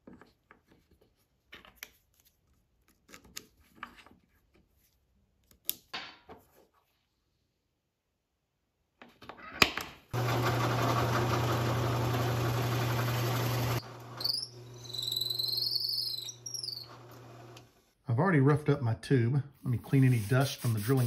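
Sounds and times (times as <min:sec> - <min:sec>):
drill press boring into wood: 0:10.2 - 0:17.8
high squeal: 0:14.2 - 0:17.0.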